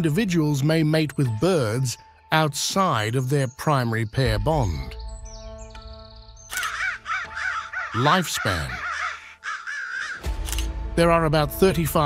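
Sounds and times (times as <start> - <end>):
background music with held notes: 0.0 - 12.0
crows cawing: 6.5 - 10.3.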